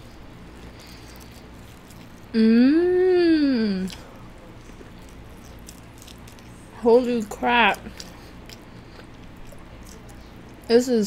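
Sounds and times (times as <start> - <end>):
wet chewing: 0.0 - 2.4, 3.5 - 10.7.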